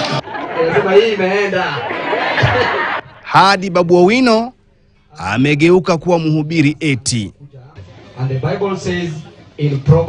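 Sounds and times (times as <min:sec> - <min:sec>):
crowd chattering: 0:00.0 - 0:03.2, 0:07.5 - 0:10.0
man talking into microphone: 0:05.2 - 0:10.0.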